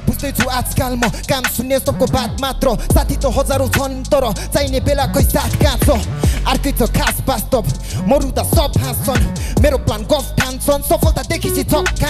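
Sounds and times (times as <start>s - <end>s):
hip-hop beat: 0.0s - 12.0s
man rapping: 0.0s - 12.0s.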